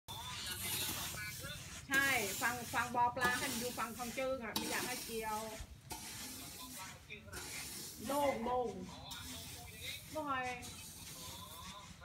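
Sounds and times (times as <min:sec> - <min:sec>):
rake dragged through rice grain: 0:00.1 - 0:12.0.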